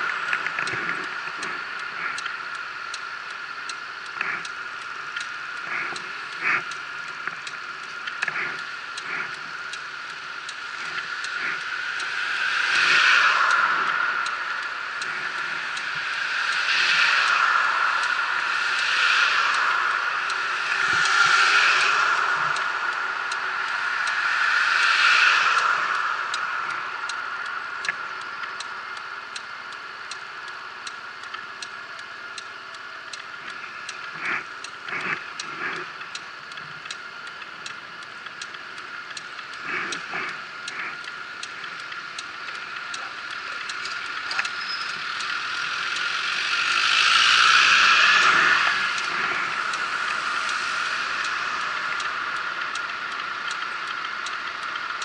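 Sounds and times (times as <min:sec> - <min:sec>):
regular ticking: 0:00.0 - 0:55.0
traffic passing: 0:42.3 - 0:53.8.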